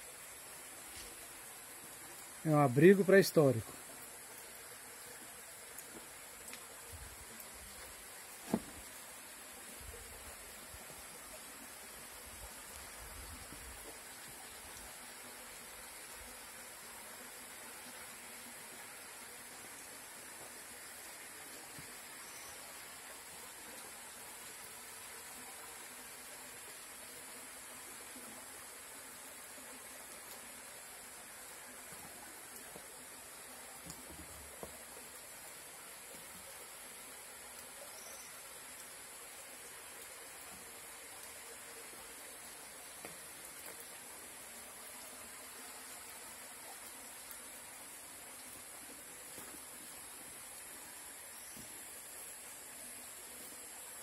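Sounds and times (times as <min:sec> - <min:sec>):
insect drone: 0:00.0 - 0:54.0
soft hiss: 0:00.0 - 0:54.0.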